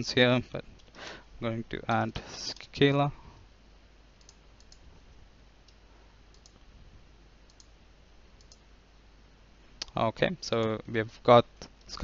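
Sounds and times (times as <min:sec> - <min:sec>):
low steady hum: 0:00.0 - 0:12.0
computer mouse clicks: 0:04.2 - 0:04.9, 0:05.6 - 0:06.7, 0:07.5 - 0:07.7, 0:08.4 - 0:08.6.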